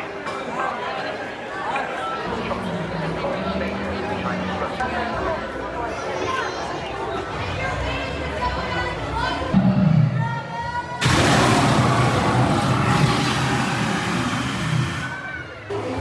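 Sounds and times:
crowd chatter: 0.0s - 16.0s
gas flame jet whoosh: 11.0s - 15.2s.

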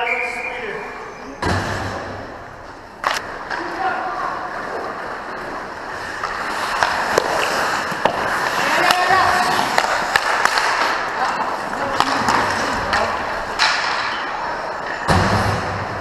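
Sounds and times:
sticks and puck clacking: 2.6s - 15.1s
skates scraping on ice: 3.0s - 15.1s.

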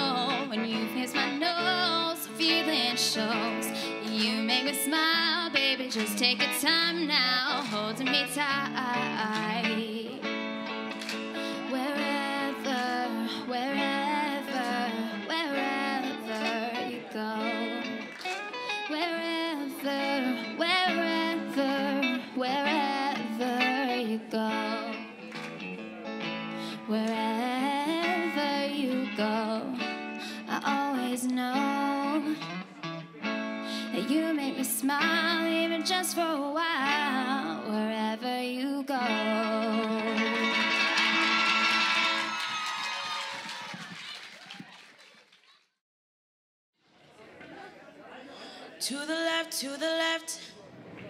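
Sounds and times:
woman singing into microphone: 0.0s - 10.4s, 11.4s - 25.2s, 26.6s - 32.6s, 33.7s - 40.8s, 48.8s - 50.5s
guitar accompaniment: 0.0s - 44.0s
audience clapping and cheering: 10.9s - 11.3s, 18.0s - 18.7s, 25.3s - 25.6s, 40.2s - 45.8s
electric guitar chord ringing: 39.1s - 42.3s.

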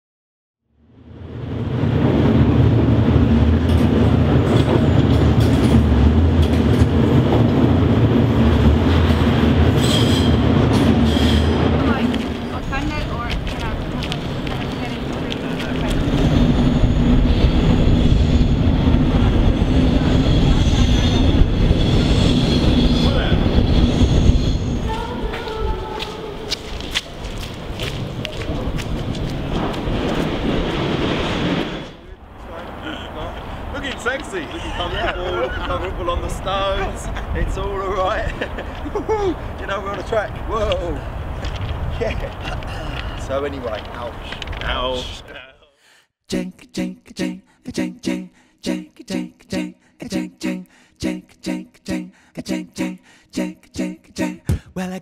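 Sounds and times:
train running on rails: 0.9s - 45.5s
high wheel squeal: 9.8s - 11.6s, 16.0s - 25.4s.

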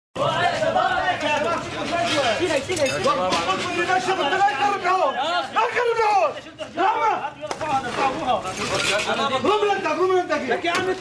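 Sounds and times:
men talking over one another: 0.2s - 11.0s.

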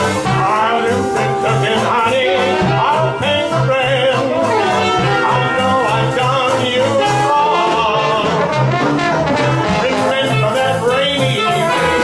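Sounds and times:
man singing: 0.0s - 8.8s, 9.4s - 12.0s
jazz band playing: 0.0s - 12.0s
walking bass line: 0.0s - 12.0s.

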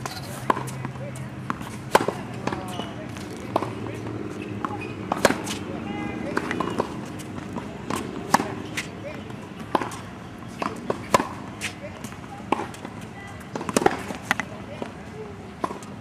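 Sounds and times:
tennis balls bouncing: 0.0s - 16.0s
racket strings striking tennis ball: 1.5s - 5.6s.

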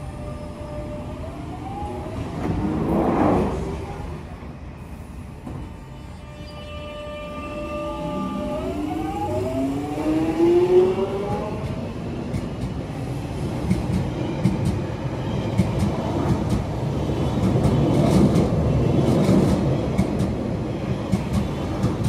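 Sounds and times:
train wheels rumbling on rail: 2.0s - 6.0s, 8.0s - 22.0s.

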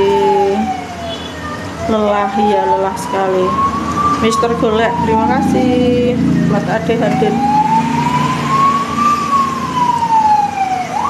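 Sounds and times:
siren wailing: 0.0s - 11.0s.

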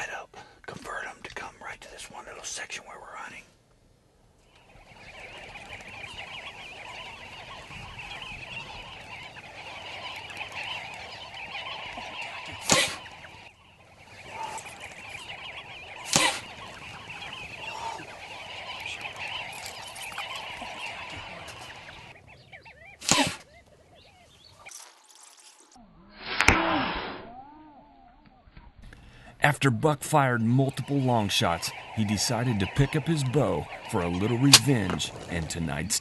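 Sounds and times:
flock of birds calling: 4.1s - 25.8s, 28.0s - 36.0s
sharp pops of blowgun shots: 11.8s - 13.1s, 14.4s - 17.4s, 23.0s - 23.5s, 32.8s - 35.4s.

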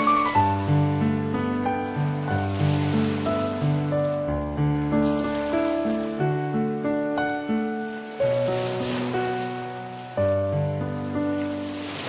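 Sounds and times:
solo piano playing: 0.0s - 12.0s.

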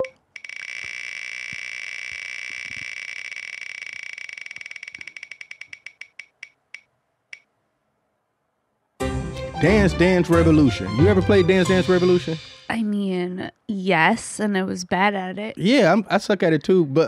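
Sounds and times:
spinning wheel clicking ticks: 0.0s - 7.5s.

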